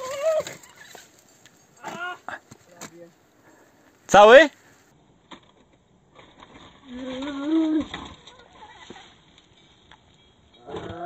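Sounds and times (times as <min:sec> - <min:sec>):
person yelling: 0:01.8 - 0:02.4.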